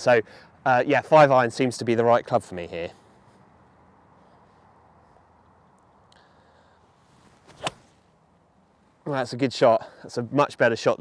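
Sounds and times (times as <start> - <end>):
golf club swish: 7.1 - 8.1
golf ball impact crack: 7.2 - 8.0.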